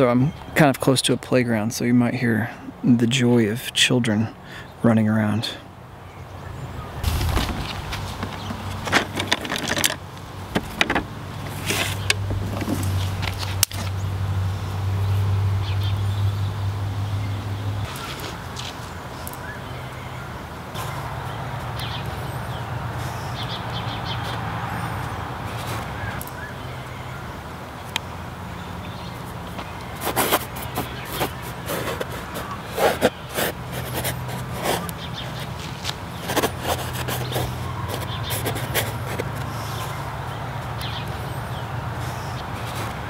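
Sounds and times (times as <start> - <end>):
sharp clicks and knocks: 7.0 - 13.8.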